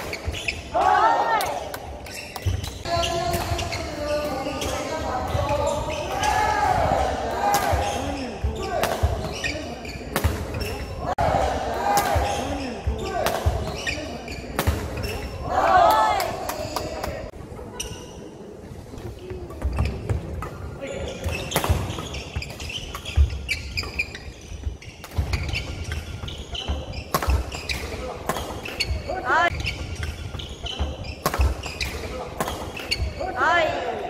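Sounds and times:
shoe squeaks on floor: 0:00.0 - 0:00.7, 0:02.0 - 0:06.2, 0:07.8 - 0:10.9, 0:12.3 - 0:15.4, 0:19.6 - 0:33.3
racket hitting shuttlecock: 0:25.0 - 0:33.1.

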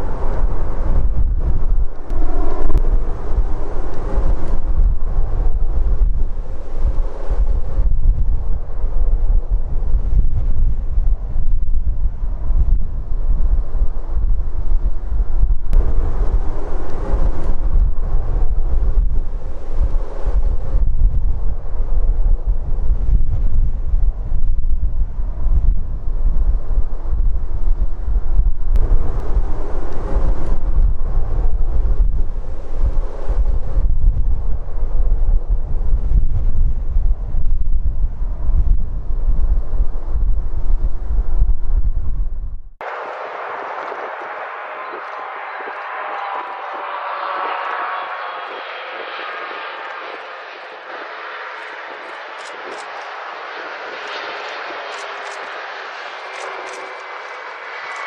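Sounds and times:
jet engine hiss and whine: 0:00.0 - 0:10.2, 0:15.6 - 0:23.2, 0:28.8 - 0:33.9, 0:42.8 - 0:58.0
jet engines rumbling: 0:00.0 - 0:41.3, 0:42.7 - 0:58.0
wind buffeting microphone: 0:00.0 - 0:58.0.

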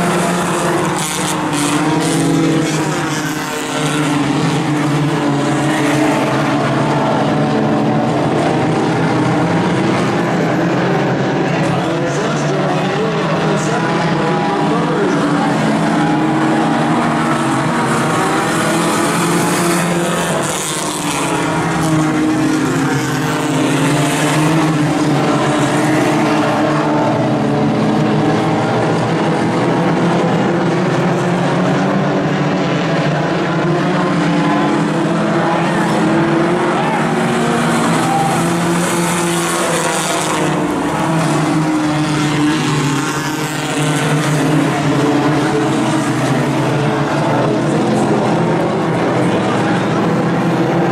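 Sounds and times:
race car engines revving: 0:00.0 - 0:50.9.

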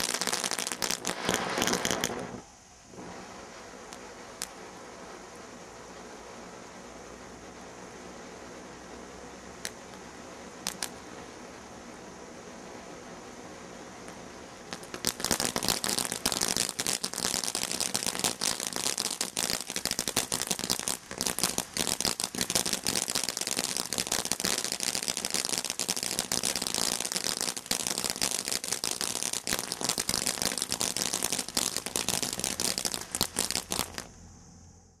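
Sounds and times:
firework fountain crackling: 0:00.0 - 0:34.2.

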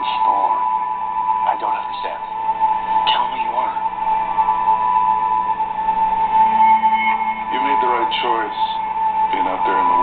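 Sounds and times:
steady high-pitched tone: 0:00.0 - 0:10.0.

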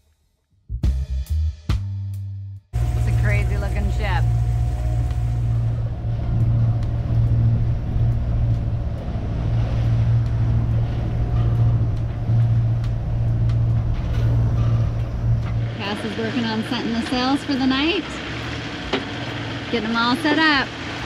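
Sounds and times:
low engine drone: 0:02.8 - 0:21.0.

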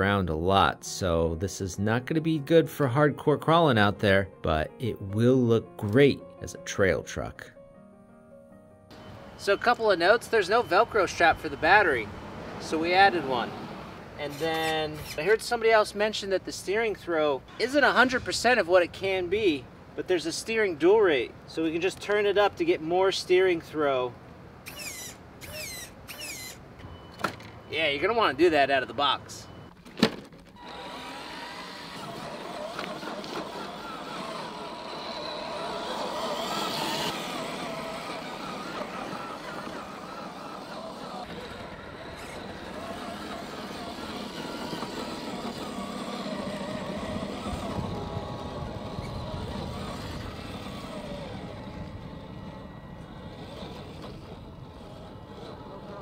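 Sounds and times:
steering servo whining: 0:24.6 - 0:27.5, 0:30.5 - 0:56.0
tires crunching on dirt and rock: 0:30.5 - 0:56.0.

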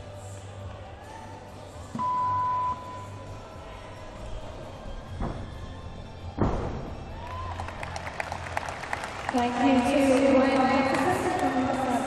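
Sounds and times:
low arena hum: 0:00.0 - 0:12.0
electronic beep: 0:02.0 - 0:03.2.

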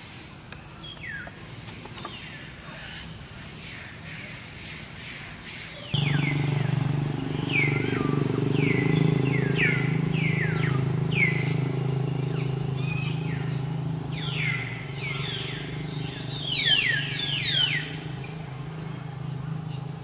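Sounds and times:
high chirping calls sliding downward: 0:05.9 - 0:18.0
steady low hum: 0:06.0 - 0:20.0.

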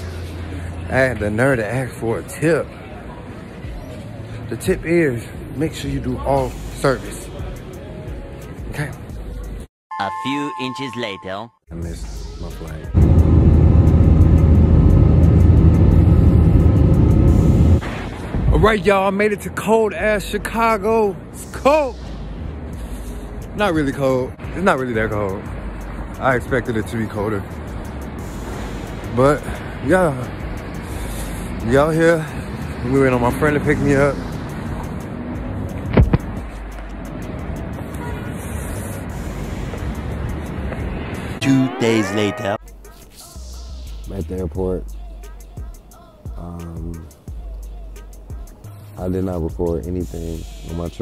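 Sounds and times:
road traffic rumble: 0:00.0 - 0:09.7, 0:11.7 - 0:51.0.

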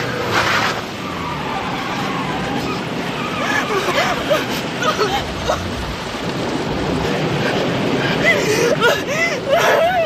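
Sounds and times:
car interior rumble and hiss: 0:00.0 - 0:10.0.

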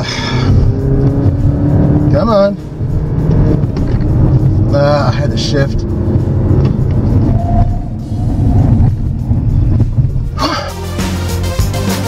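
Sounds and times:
car engine drone inside cabin: 0:00.0 - 0:10.6
background music: 0:00.0 - 0:12.0
road noise: 0:00.0 - 0:12.0.

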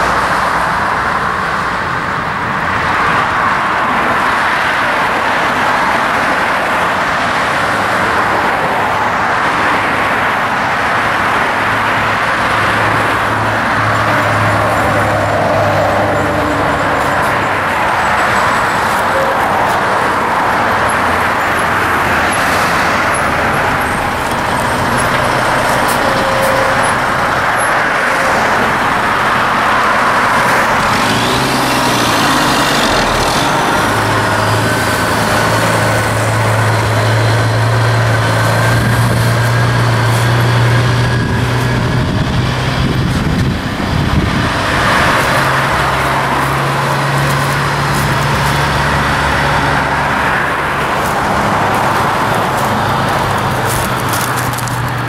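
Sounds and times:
road traffic noise: 0:00.0 - 0:55.0
diesel truck engine driving past: 0:11.5 - 0:55.0.

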